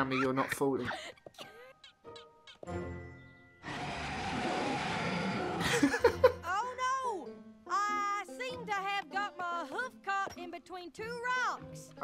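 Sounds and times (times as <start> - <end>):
background music: 0.0 - 12.0
rushing noise effect: 3.6 - 5.6.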